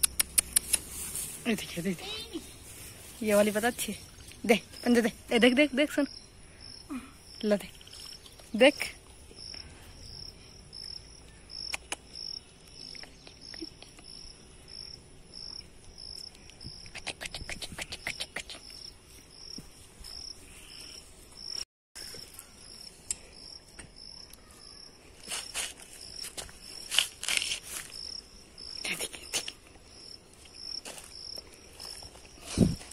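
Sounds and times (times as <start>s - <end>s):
insect chirping: 1.5s - 32.9s.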